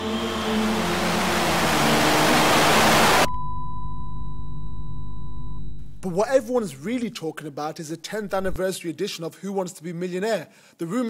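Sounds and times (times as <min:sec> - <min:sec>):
low held chord: 0:00.0 - 0:03.3
low hum: 0:00.0 - 0:06.3
high beep-like tone: 0:03.3 - 0:06.0.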